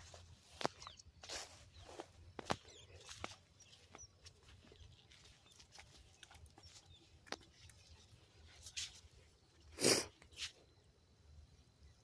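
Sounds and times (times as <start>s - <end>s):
footsteps on sand: 0.0s - 9.2s.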